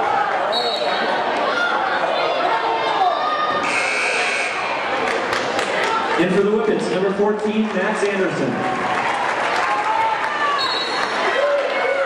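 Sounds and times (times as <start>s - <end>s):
crowd chatter echoing: 0.0s - 12.0s
high squeak: 3.6s - 4.6s.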